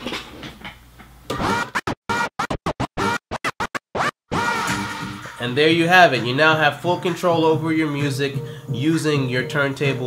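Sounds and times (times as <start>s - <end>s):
music track scratched on turntable: 1.3s - 8.4s.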